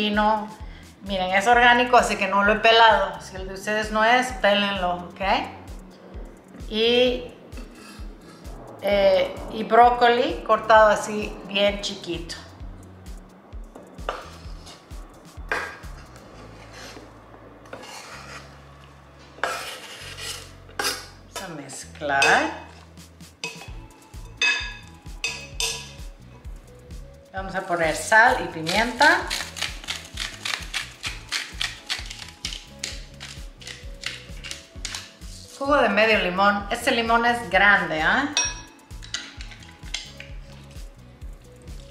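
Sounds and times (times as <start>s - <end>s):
background music with beat: 4.9s - 8.9s, 12.3s - 17.4s, 22.2s - 27.4s, 38.0s - 41.9s
knife scraping cutting board: 14.1s - 14.9s, 15.5s - 17.1s, 17.7s - 21.1s, 28.6s - 35.6s
pepper mill grinding clicks: 28.7s - 35.1s.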